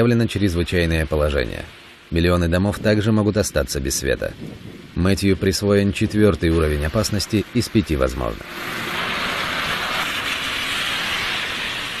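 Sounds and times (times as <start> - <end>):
strong wind and rain: 0.0 - 12.0.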